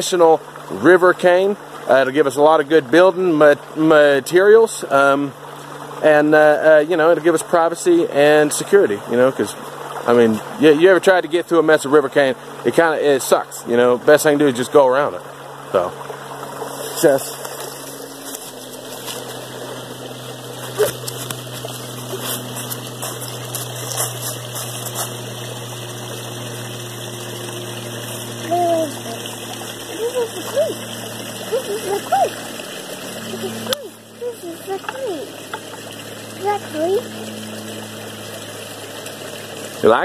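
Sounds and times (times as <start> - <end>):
creek water washing: 0.0 - 40.0
steady low hum: 11.6 - 40.0
footsteps through dry leaves: 16.7 - 25.3.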